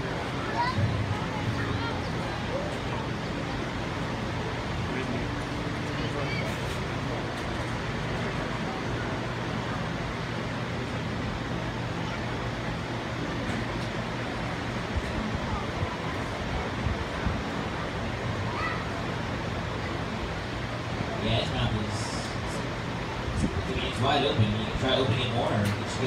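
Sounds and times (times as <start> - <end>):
murmur of audience voices: 0.0 - 26.0.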